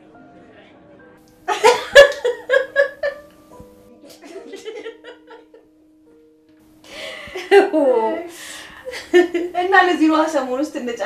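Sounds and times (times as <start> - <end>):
woman talking: 7.4 - 8.4, 9.2 - 11.0.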